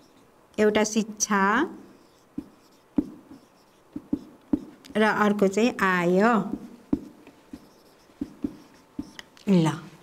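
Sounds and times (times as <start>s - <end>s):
marker scratching on whiteboard: 1.8s - 9.3s
sharp ticks of marker tip: 2.1s - 5.0s, 6.5s - 9.5s.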